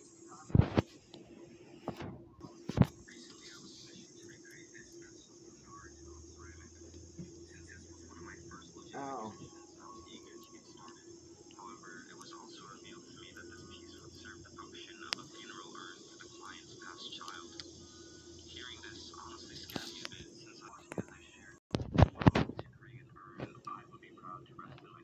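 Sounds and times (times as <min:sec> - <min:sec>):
steady low hum: 0:00.0 - 0:25.0
distant voices: 0:01.0 - 0:21.5.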